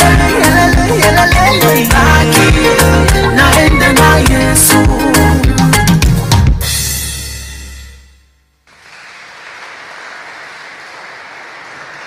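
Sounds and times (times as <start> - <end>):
congregation clapping: 8.7 - 12.0.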